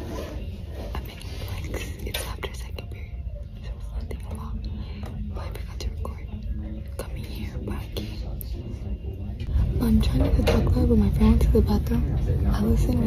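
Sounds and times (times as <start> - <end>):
low background noise: 0.0 - 13.0
woman whispering: 0.7 - 8.6.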